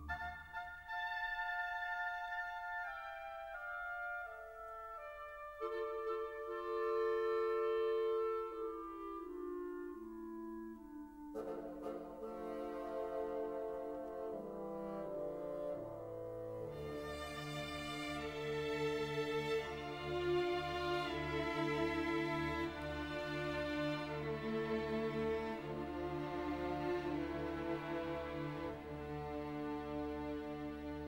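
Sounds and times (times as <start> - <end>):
orchestra sustained brass chords: 0.0 - 31.0.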